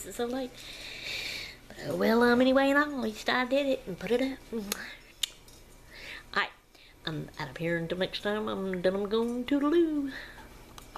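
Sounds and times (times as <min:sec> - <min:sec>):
woman speaking softly: 0:01.7 - 0:05.0, 0:06.4 - 0:10.2.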